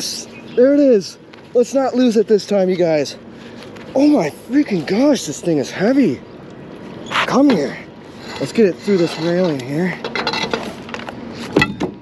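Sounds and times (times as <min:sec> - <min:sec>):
metal pipe scraping: 0:07.1 - 0:10.8.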